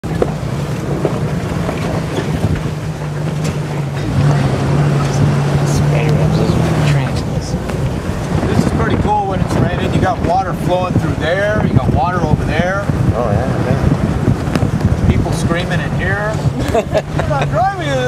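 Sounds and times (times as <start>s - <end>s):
off-road vehicle engine droning: 0.0s - 18.0s
wind on microphone: 0.0s - 18.0s.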